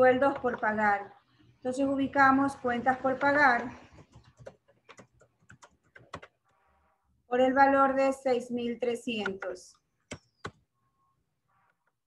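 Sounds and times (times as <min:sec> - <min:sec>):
faint keyboard typing: 0:00.0 - 0:00.9, 0:03.0 - 0:06.9, 0:09.0 - 0:10.7.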